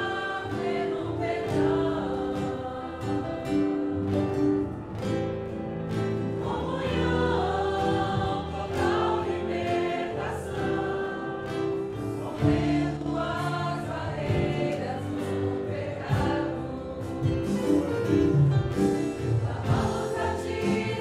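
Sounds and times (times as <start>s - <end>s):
acoustic guitar: 0.0s - 21.0s
congregation singing a hymn: 0.0s - 21.0s
keyboard: 0.0s - 21.0s.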